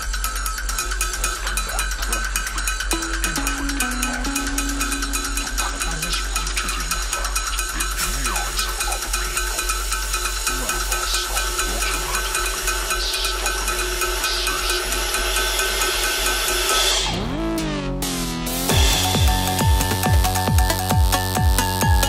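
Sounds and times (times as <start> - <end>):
bucket drumming: 2.9 - 6.8
synthesizer drone: 2.9 - 7.7.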